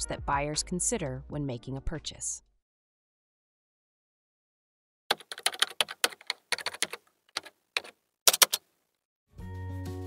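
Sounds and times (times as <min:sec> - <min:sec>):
keyboard key clicks: 0:05.1 - 0:08.7.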